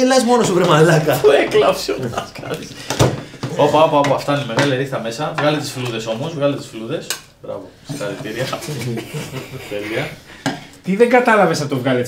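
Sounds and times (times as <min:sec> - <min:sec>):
person talking: 0:00.0 - 0:10.2.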